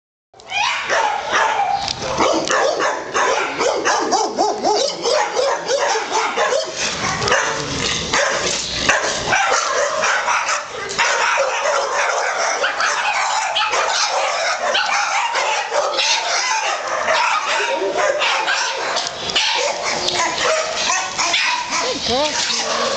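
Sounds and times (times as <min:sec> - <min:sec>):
many dogs barking: 0:00.4 - 0:22.9.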